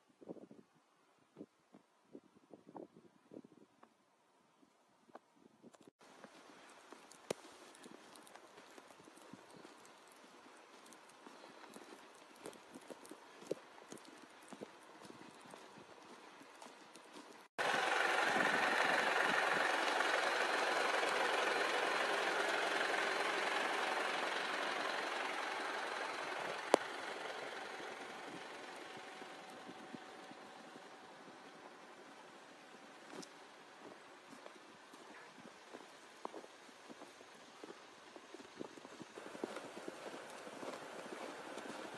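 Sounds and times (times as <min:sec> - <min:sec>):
footsteps crunching in snow: 0:06.1 - 0:18.6, 0:27.7 - 0:41.9.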